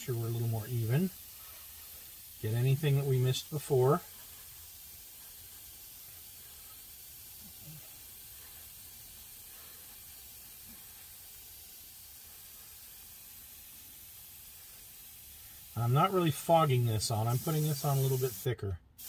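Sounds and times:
airbrush spraying hiss: 0.0s - 19.0s.

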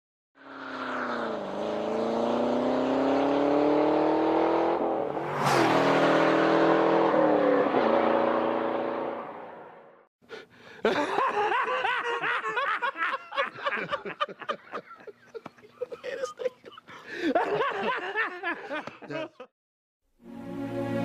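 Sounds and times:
car engine accelerating hard: 0.4s - 10.0s.

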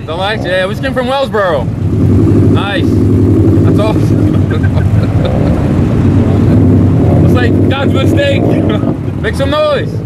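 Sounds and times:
car engine deep exhaust rumble: 0.0s - 10.0s.

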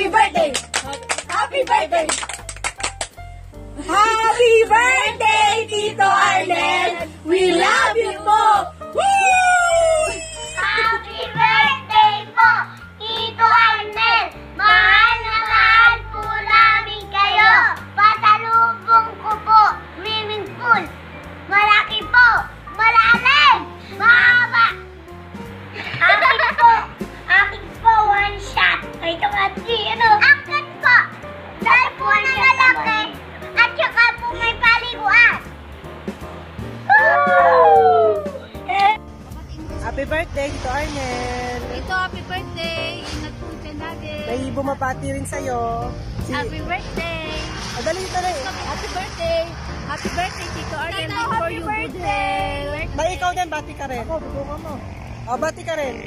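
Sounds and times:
quiet background music: 0.0s - 56.0s
children shouting and laughing: 3.8s - 25.0s, 25.7s - 35.5s, 36.8s - 39.7s
small children singing: 4.7s - 8.7s, 10.6s - 20.8s
adult shouting excitedly: 6.6s - 10.9s, 36.9s - 38.5s.

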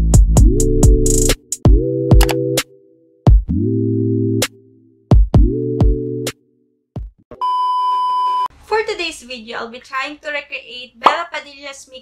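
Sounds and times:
woman speaking: 8.6s - 12.0s.

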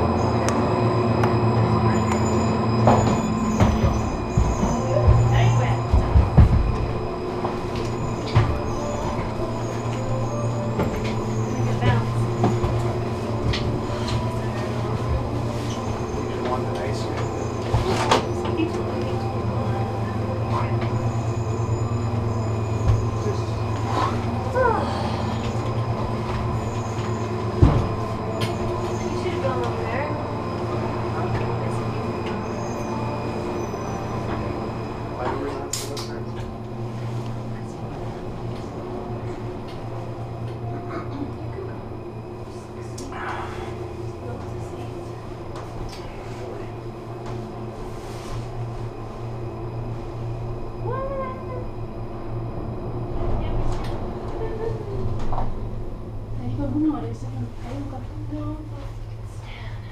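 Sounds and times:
low machinery hum: 0.0s - 59.9s.

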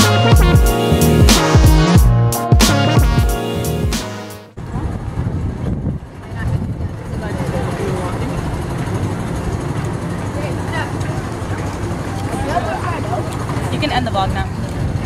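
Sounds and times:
steady low rumble: 4.6s - 15.0s
people talking: 6.2s - 14.8s.

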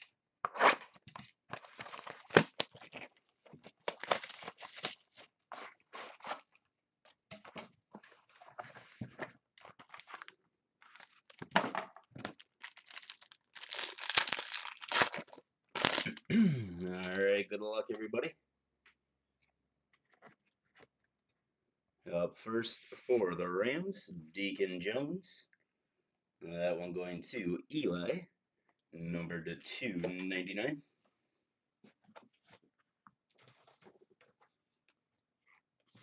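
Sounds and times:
cardboard crunching and tearing: 3.8s - 5.1s, 12.6s - 16.1s.

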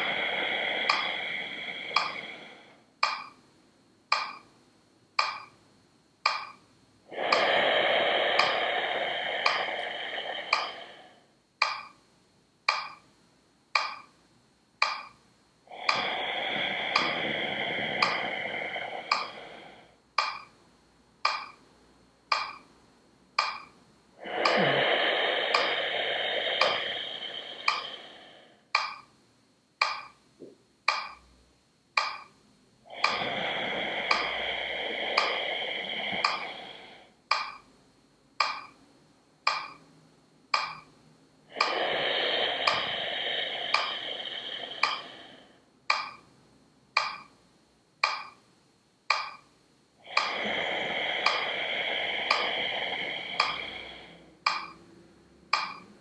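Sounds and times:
metronome ticking: 0.0s - 3.4s, 4.1s - 5.6s, 6.2s - 7.6s, 8.4s - 12.0s, 12.6s - 14.2s, 14.8s - 15.2s, 15.8s - 20.6s, 21.2s - 29.2s, 29.8s - 41.0s, 41.6s - 46.3s, 46.9s - 47.4s, 48.0s - 49.5s, 50.1s - 56.0s
slow breathing: 0.0s - 3.4s, 4.1s - 4.5s, 5.2s - 5.6s, 6.2s - 12.0s, 12.7s - 13.0s, 13.8s - 14.2s, 14.8s - 20.6s, 21.2s - 21.6s, 22.3s - 29.1s, 30.9s - 31.3s, 32.0s - 37.8s, 38.4s - 38.8s, 39.5s - 46.3s, 47.0s - 47.4s, 49.1s - 56.0s.

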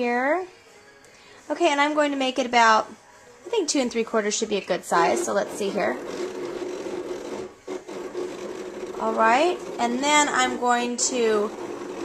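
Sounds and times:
cutting machine whirring: 4.9s - 12.0s.

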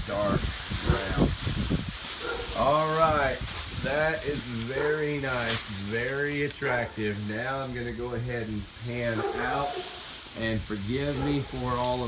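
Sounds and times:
man's voice: 0.0s - 1.4s, 2.5s - 12.0s
wind buffeting microphone: 0.0s - 6.1s
plastic sheeting flapping: 0.0s - 6.4s.

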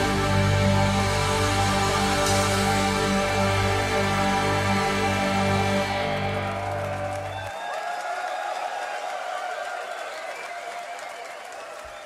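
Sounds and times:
audience cheering and applauding: 0.0s - 12.0s.

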